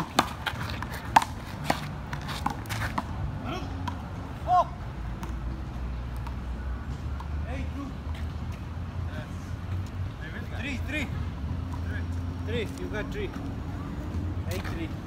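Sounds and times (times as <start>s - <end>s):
low rumble of street traffic: 0.0s - 15.0s.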